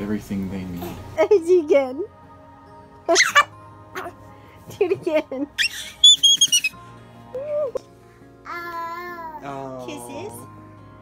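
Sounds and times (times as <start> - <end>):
soft background music: 0.0 - 11.0
toddler squealing: 5.6 - 6.8.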